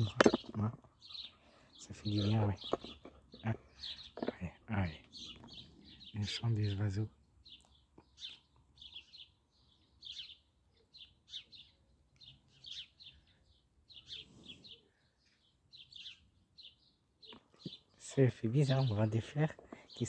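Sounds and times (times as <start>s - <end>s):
songbirds chirping: 0.0s - 20.0s.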